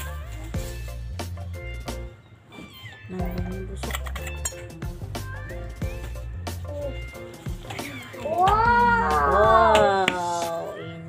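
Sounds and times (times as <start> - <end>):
background music: 0.0 - 2.5, 3.1 - 11.0
child's high-pitched exclamation: 8.2 - 11.0.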